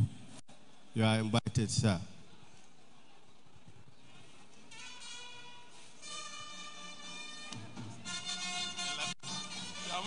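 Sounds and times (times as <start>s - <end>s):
faint hall noise: 0.0s - 10.0s.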